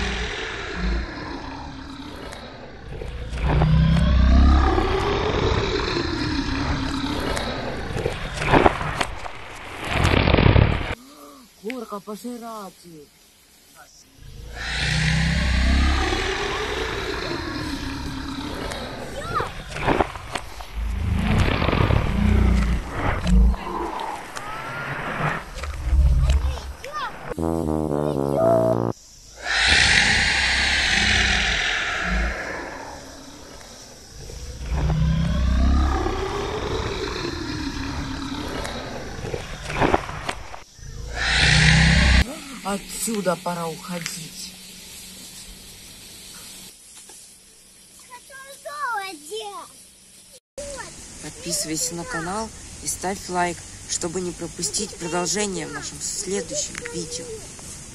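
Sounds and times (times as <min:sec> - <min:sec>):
monster roars and growls: 0:00.0 - 0:09.0, 0:14.2 - 0:27.3, 0:29.4 - 0:42.3.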